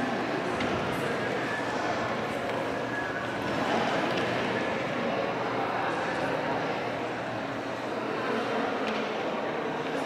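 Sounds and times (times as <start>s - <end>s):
murmur of indistinct voices: 0.0s - 10.0s.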